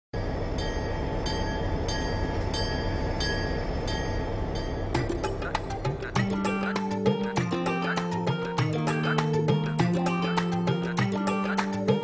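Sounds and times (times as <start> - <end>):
train rumble: 0.2 - 6.8
music with sharp percussive hits: 4.9 - 12.0.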